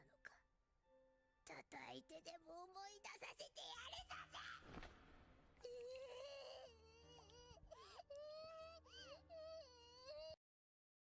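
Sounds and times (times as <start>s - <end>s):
high voice crying and whimpering: 5.6s - 10.4s.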